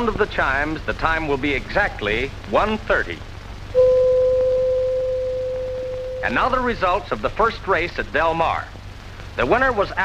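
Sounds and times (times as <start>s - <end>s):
radio time-signal chime: 3.8s - 6.8s.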